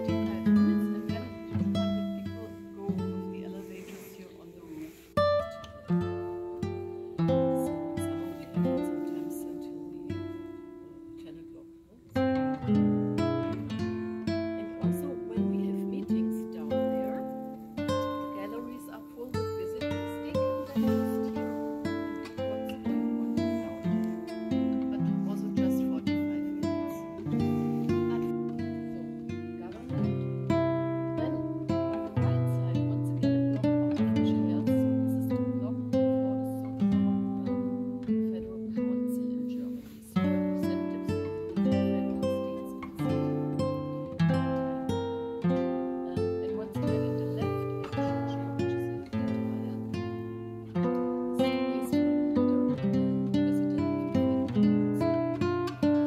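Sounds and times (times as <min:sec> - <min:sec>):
acoustic guitar picking a melody: 0:00.0 - 0:56.0.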